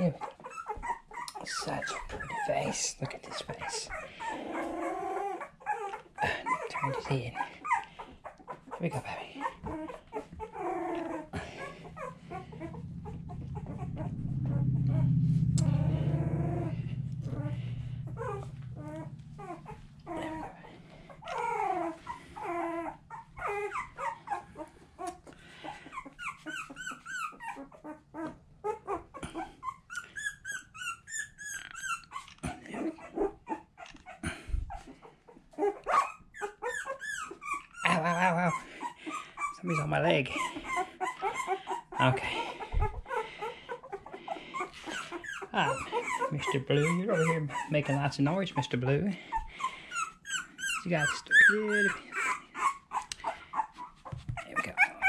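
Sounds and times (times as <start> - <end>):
puppies whimpering and squealing: 0.0 - 55.0
low rumble: 10.8 - 24.7.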